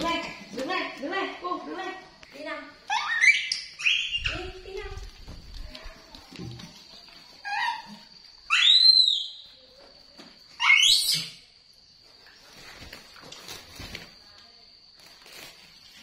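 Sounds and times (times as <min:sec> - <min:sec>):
baby monkey high-pitched calls: 0:02.9 - 0:04.6, 0:07.4 - 0:09.5, 0:10.6 - 0:11.5.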